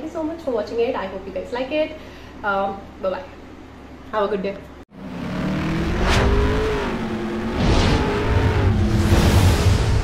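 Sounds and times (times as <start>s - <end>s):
deep rumbling drone: 5.0s - 10.0s
whooshes sweeping past: 5.6s - 10.0s.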